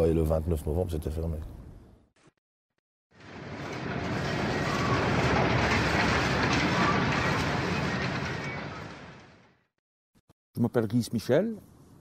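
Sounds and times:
heavy machinery noise: 3.2 - 9.7.

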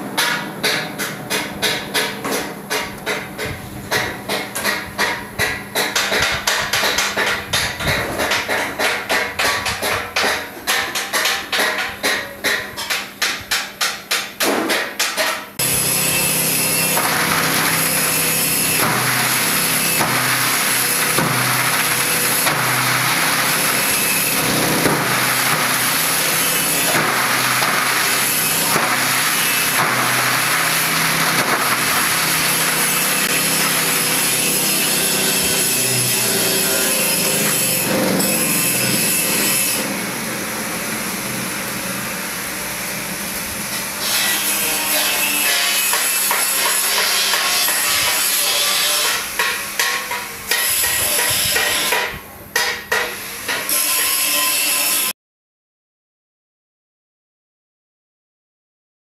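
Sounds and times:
shredder motor hum: 15.6 - 39.0
shredder grinding and crunching: 15.6 - 49.7.

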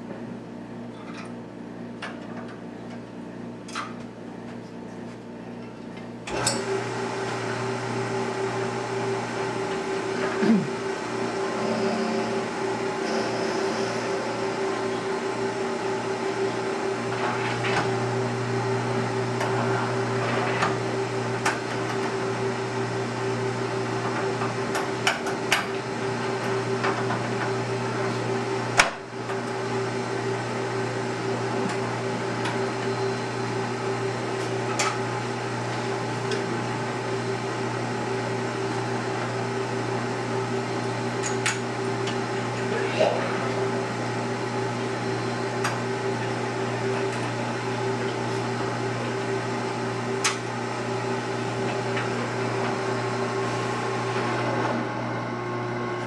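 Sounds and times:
wood lathe motor hum: 6.6 - 56.0.

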